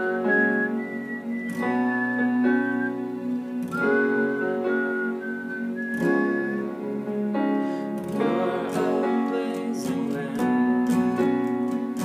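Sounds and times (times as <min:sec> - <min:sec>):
whistled melody: 0:00.0 - 0:08.2
acoustic guitar chords: 0:00.0 - 0:12.0.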